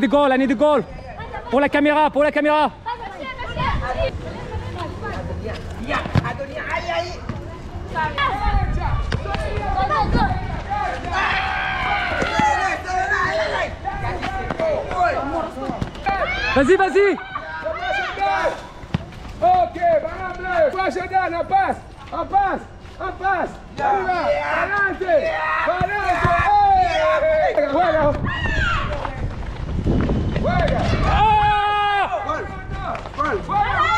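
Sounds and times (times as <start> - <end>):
football kicks and bounces: 6.0 - 6.4, 18.8 - 19.3, 25.8 - 26.5
children shouting: 9.4 - 13.7, 16.0 - 18.7, 30.8 - 32.4, 33.5 - 33.9
running footsteps: 17.6 - 33.9.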